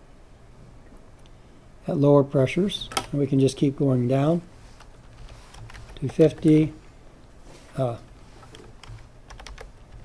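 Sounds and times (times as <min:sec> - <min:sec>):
computer keyboard keystrokes: 0:04.8 - 0:06.6, 0:08.4 - 0:10.0.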